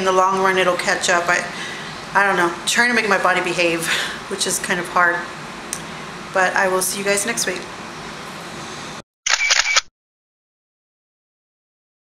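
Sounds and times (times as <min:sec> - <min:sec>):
camera shutter: 0:09.3 - 0:09.9.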